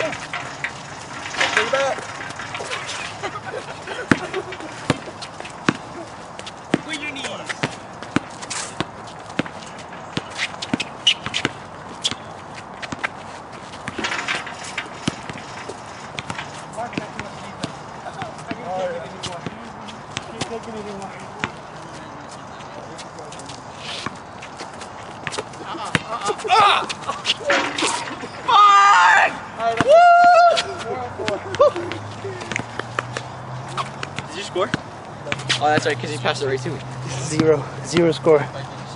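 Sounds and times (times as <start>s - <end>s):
players calling out: 0.0s - 38.8s
basketball bouncing on concrete: 4.0s - 22.2s, 24.0s - 26.4s, 31.2s - 36.0s, 37.3s - 38.2s.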